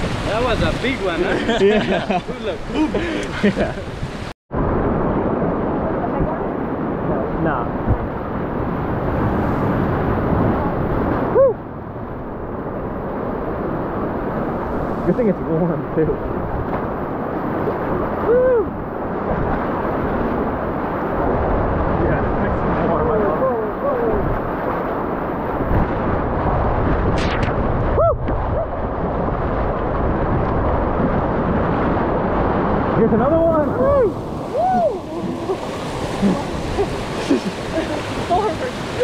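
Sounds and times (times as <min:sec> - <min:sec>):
wave splashing over raft: 0:00.0 - 0:11.6, 0:12.4 - 0:39.0
whitewater rapids roaring: 0:31.9 - 0:39.0.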